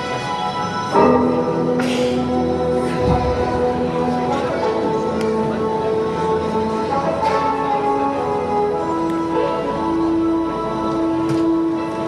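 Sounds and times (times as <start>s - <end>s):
slow melody of held notes: 0.0s - 12.0s.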